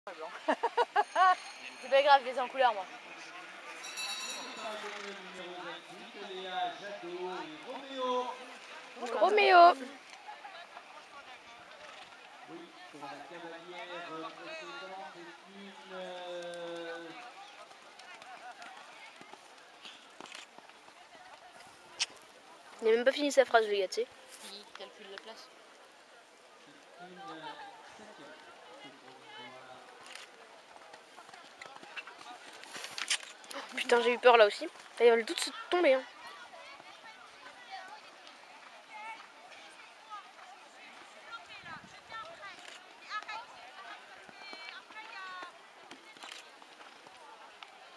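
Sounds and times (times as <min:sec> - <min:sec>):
murmur of voices: 0:00.1 - 0:47.9
rustling noise: 0:31.2 - 0:35.5.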